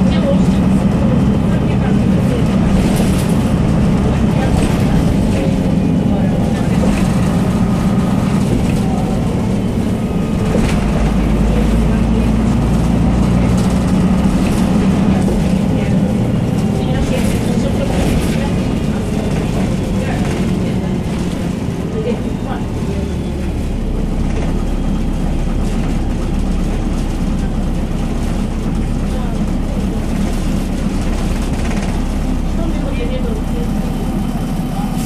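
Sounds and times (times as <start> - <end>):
bus diesel engine drone: 0.0 - 35.0
road noise: 0.0 - 35.0.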